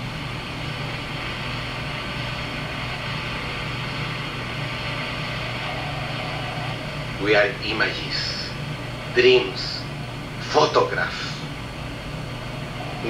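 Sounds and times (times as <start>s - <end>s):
low hum: 0.0s - 13.0s
even hiss: 0.8s - 11.6s.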